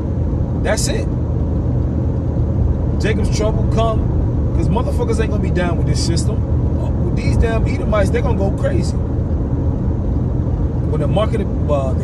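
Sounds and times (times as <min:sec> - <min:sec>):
car engine and tyre road noise: 0:00.0 - 0:12.0.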